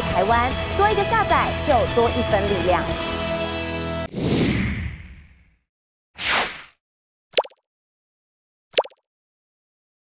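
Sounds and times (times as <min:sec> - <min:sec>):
falling-pitch plop effects: 0:07.3 - 0:07.6, 0:08.7 - 0:09.0.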